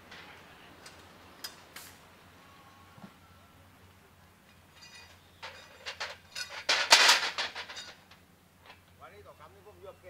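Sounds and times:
metal frames clinking: 4.4 - 8.8.

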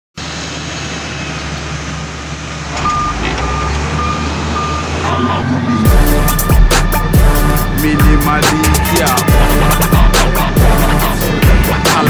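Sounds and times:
heavy machine engine running: 0.2 - 12.0
reversing alarm beeping: 2.8 - 12.0
hip hop beat: 5.1 - 12.0.

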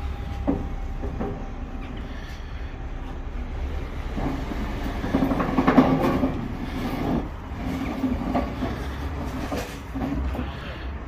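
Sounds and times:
engine low rumble: 0.0 - 11.0.

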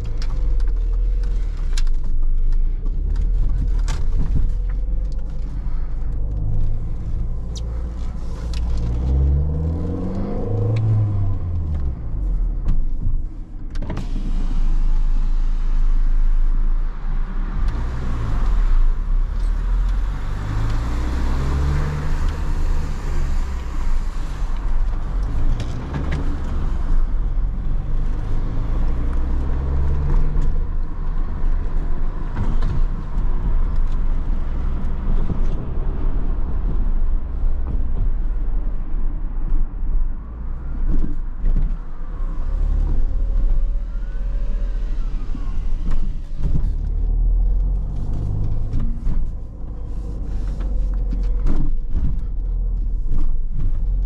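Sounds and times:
car engine revving through gears: 2.8 - 54.0.

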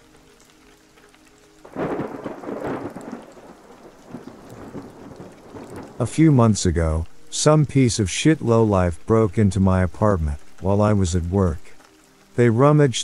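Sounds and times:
rain: 0.0 - 13.0
thunder rumbling: 1.6 - 11.7.

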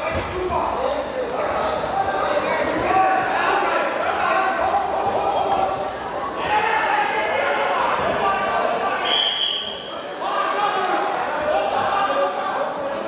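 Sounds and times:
voices echoing in a hall: 0.0 - 13.0
referee's whistle blast: 9.0 - 9.9.

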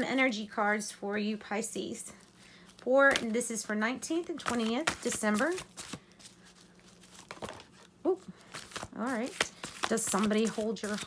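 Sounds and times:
low steady hum: 0.0 - 11.0
cards being shuffled: 4.2 - 11.0.

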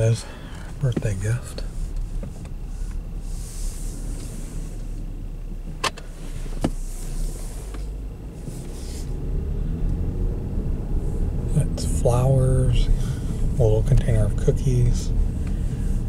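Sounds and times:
engine rumble in car cabin: 0.0 - 16.0.

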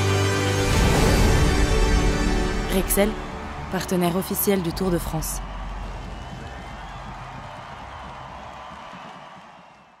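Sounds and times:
crowd cheering and clapping: 2.9 - 10.0.

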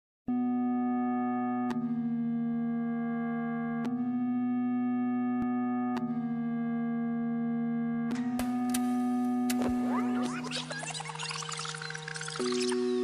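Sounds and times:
electronic keyboard chords: 7.8 - 13.0
small click: 8.1 - 8.9, 9.5 - 9.8.

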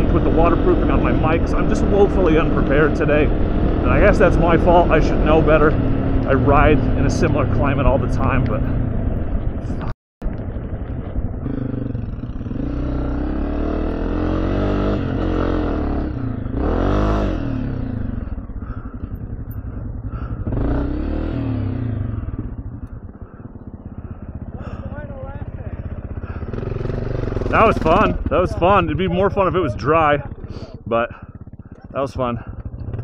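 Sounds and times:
dirt bike engines revving: 0.0 - 33.0.

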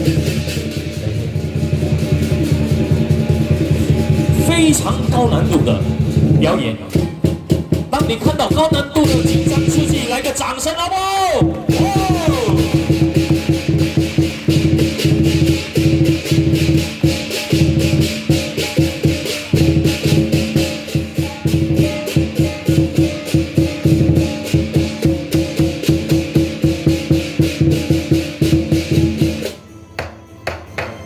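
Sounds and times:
clashing cymbals: 0.0 - 10.2, 11.4 - 31.0
drum beaten in fast rhythm: 0.0 - 31.0.

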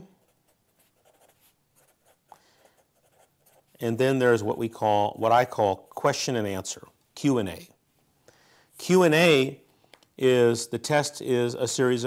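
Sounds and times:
marker writing on paper: 0.0 - 3.8.

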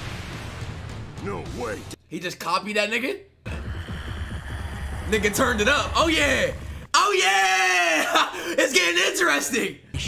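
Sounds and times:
deep low rumbling: 3.5 - 6.9.

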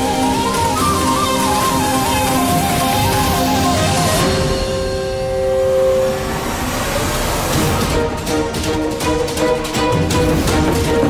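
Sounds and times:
dramatic background score: 0.0 - 11.0.

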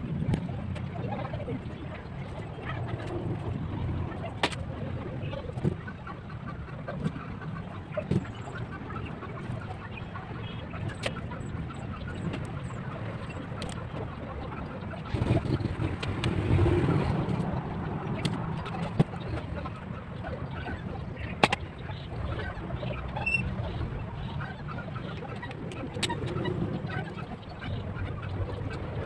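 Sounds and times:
low background rumble: 0.0 - 29.0.

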